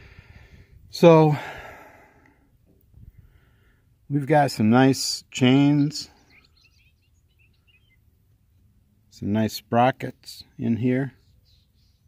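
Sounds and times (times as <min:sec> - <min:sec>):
faint bird chirps: 0:05.6 - 0:08.8, 0:10.4 - 0:12.0.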